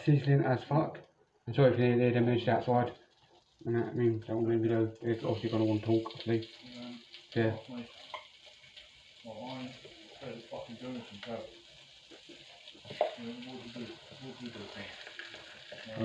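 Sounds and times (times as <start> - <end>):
fish sizzling in a pan: 3.0 - 16.0.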